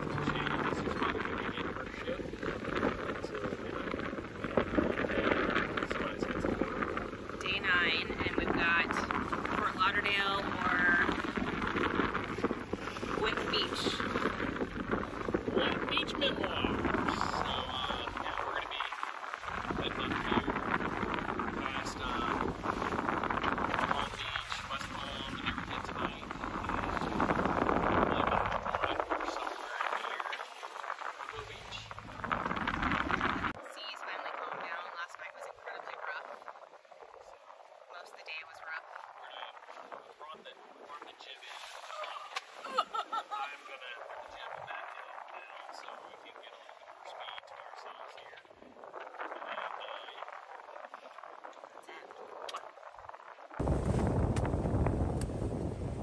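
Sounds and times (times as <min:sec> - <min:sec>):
man and woman talking: 0:00.0 - 0:04.0, 0:04.8 - 0:22.6, 0:23.6 - 0:36.5, 0:37.1 - 0:48.4, 0:49.0 - 0:52.7
wind on microphone: 0:00.0 - 0:56.0.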